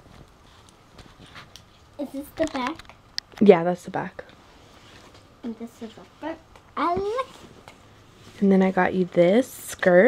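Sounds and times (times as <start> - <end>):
clothes rustling: 0.0 - 2.8, 4.4 - 9.0.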